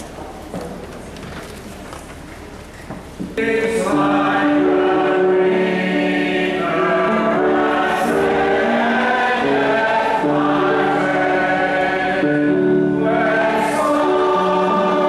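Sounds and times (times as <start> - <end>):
congregation singing a hymn: 3.4 - 15.0.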